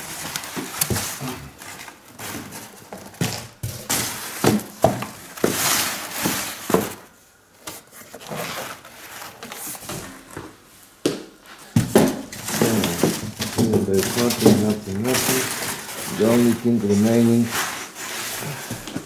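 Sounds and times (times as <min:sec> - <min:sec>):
cardboard scraping and rustling: 0:00.0 - 0:10.4, 0:11.8 - 0:19.0.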